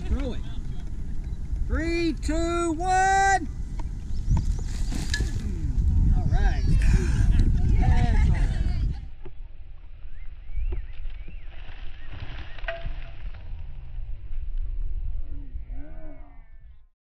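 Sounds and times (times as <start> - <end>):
shovels tossing dirt: 4.5 - 5.5.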